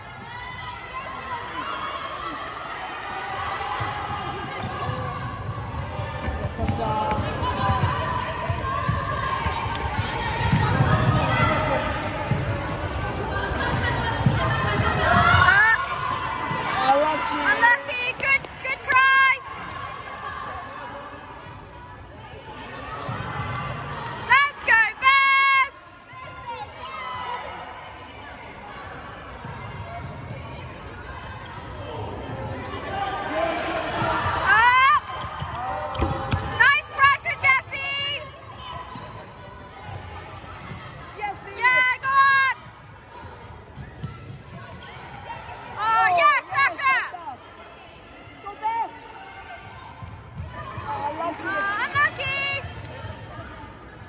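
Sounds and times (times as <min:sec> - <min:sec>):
low hall murmur: 0:00.0 - 0:54.0.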